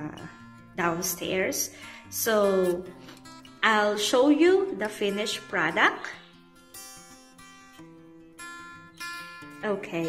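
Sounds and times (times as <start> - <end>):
plucked acoustic guitar notes: 0.0 - 10.0.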